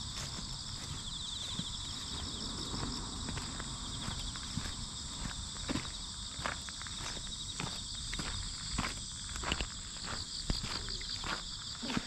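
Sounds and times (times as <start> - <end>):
footsteps on dirt path: 0.0 - 12.0
insects chirring: 0.0 - 12.0.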